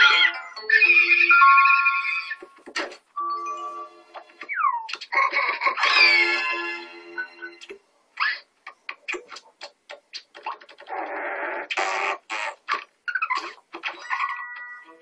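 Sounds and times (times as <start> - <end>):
cartoon music with sliding notes: 0.0 - 5.1, 5.7 - 7.7.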